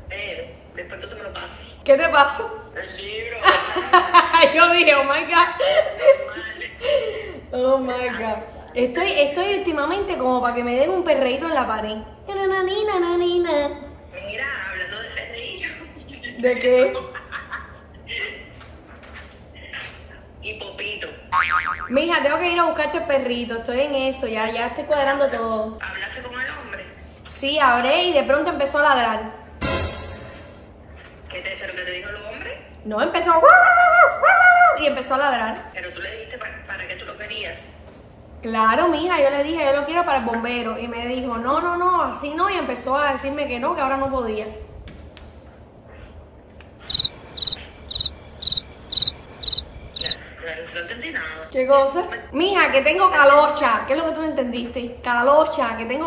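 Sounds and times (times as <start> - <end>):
cricket chirping: 46.8 - 50.3.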